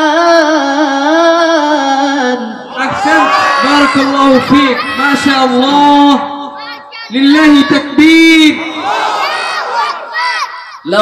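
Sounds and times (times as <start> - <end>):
crowd calling out together: 2.7 - 5.6, 6.6 - 11.0.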